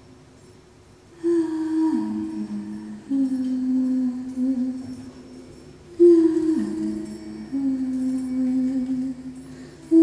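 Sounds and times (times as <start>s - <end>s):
person humming low notes: 1.2s - 10.0s.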